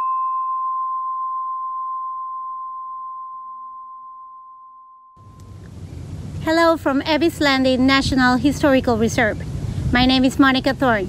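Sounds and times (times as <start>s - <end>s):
struck bell ringing: 0.0s - 5.4s.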